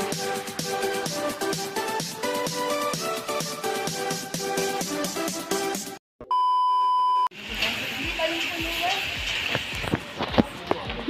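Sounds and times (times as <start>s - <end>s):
test tone beep: 6.2s - 7.3s.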